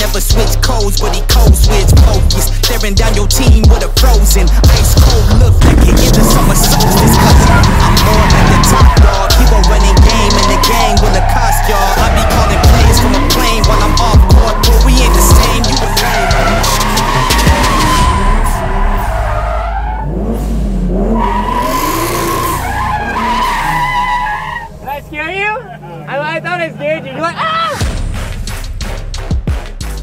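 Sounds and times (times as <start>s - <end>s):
car engine revving: 0.0s - 30.0s
hip-hop track with heavy bass: 0.0s - 30.0s
tyres squealing: 5.6s - 27.8s.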